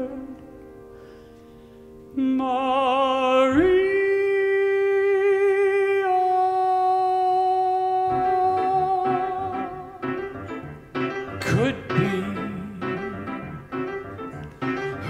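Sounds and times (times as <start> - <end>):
piano accompaniment: 0.0 - 15.0
man singing with vibrato: 2.1 - 10.2, 11.3 - 13.7.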